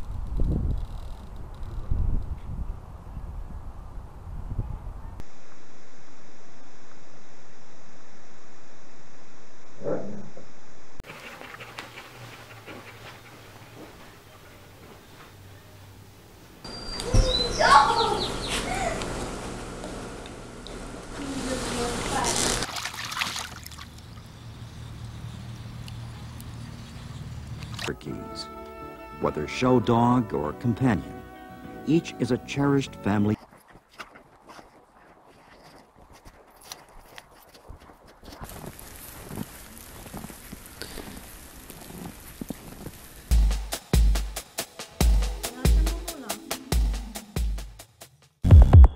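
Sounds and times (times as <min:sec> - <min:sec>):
steady low hum: 0:05.1 - 0:13.6
dog panting softly: 0:11.0 - 0:15.0
dog paws crunching in snow: 0:32.6 - 0:43.3
steady hiss: 0:38.5 - 0:45.4.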